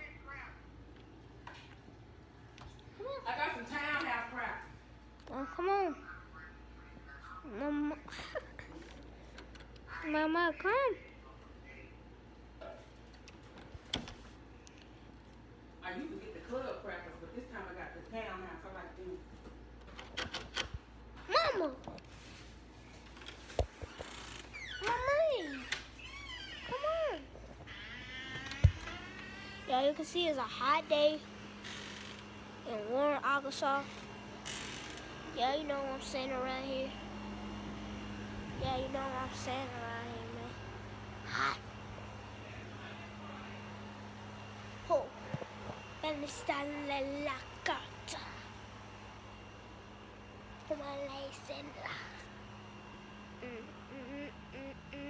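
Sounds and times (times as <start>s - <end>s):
child's voice: 5.2s - 6.2s, 7.4s - 8.8s, 21.2s - 22.0s, 24.8s - 25.8s, 26.6s - 27.3s, 29.5s - 31.2s, 32.6s - 33.9s, 35.4s - 37.0s, 38.6s - 40.6s, 41.2s - 41.6s, 46.0s - 48.5s, 50.6s - 52.2s, 53.4s - 55.0s
machine humming: 23.0s - 55.0s.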